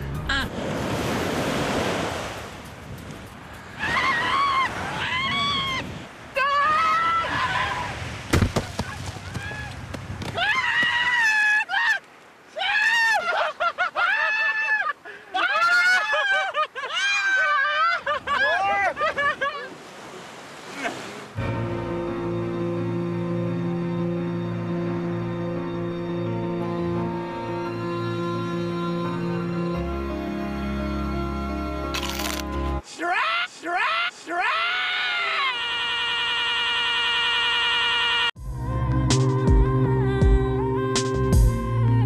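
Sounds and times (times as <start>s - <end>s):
surf: 17.2s - 25.2s.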